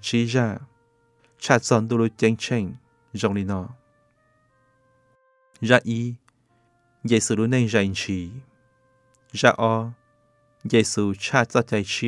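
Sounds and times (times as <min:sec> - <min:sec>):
man speaking: 0:00.0 - 0:00.8, 0:01.4 - 0:03.8, 0:05.6 - 0:06.2, 0:07.0 - 0:08.5, 0:09.3 - 0:10.0, 0:10.7 - 0:12.0
soft background music: 0:00.0 - 0:12.0.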